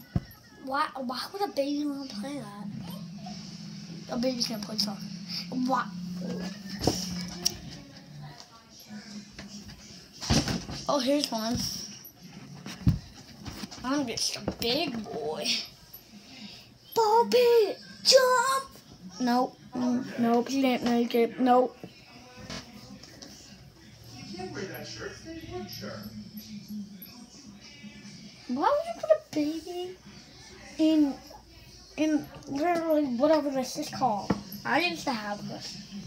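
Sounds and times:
faint voices: 0:00.0 - 0:36.0
quiet music from speakers: 0:00.0 - 0:36.0.

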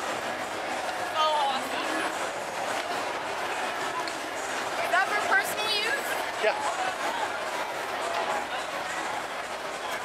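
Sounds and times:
dense crowd chatter: 0:00.0 - 0:10.0.

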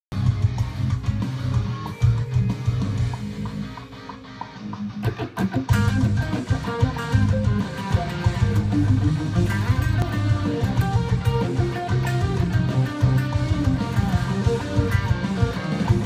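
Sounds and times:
distorted electric guitar solo: 0:00.2 - 0:16.0.

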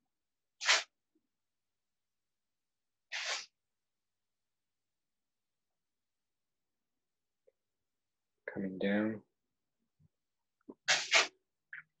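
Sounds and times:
short sniffs: 0:03.1 - 0:03.5.

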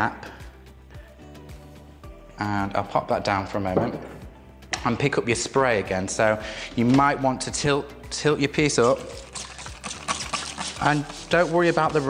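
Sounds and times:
spray bottle spritzing: 0:08.7 - 0:12.0.

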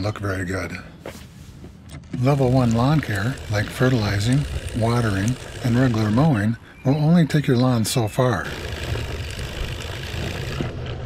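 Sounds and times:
spreader whirring and rattling: 0:02.0 - 0:06.6, 0:08.3 - 0:11.0.

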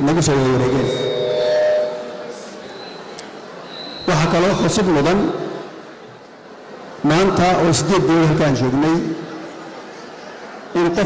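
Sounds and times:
man speaking into microphone: 0:00.0 - 0:01.1, 0:04.1 - 0:05.5, 0:07.0 - 0:09.2, 0:10.7 - 0:11.0.

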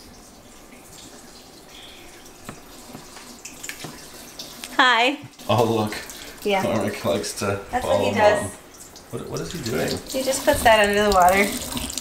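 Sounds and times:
tap water running into sink: 0:00.0 - 0:12.0.

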